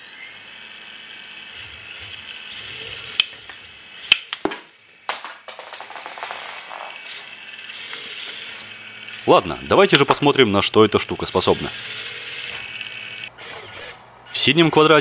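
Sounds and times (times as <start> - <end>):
robot motor whine: 0.0 - 4.8, 6.5 - 14.5
drum hitting plastic figures: 4.4 - 6.6.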